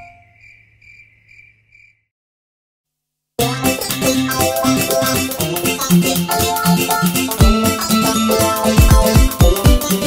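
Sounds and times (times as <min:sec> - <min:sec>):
crickets chirping: 0:00.0 - 0:02.1.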